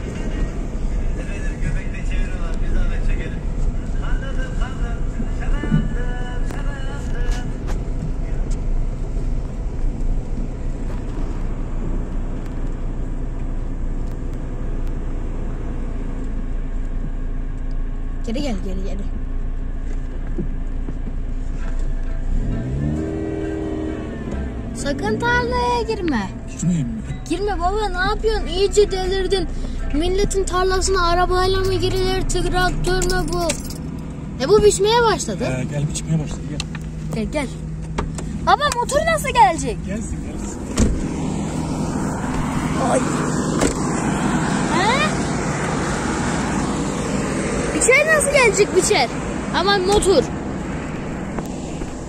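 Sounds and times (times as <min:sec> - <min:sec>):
car engine rumbling and revving: 0:00.0 - 0:52.0.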